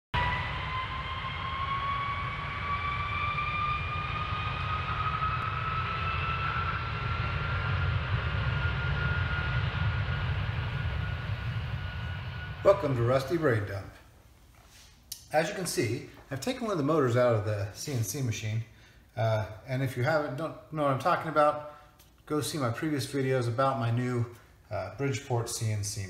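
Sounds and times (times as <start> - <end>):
droning tone rising in pitch: 0.0 - 14.0
steady low rumble: 0.1 - 14.5.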